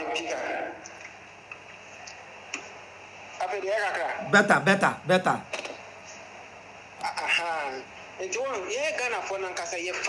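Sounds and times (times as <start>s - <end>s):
low room hiss: 0.0s - 9.9s.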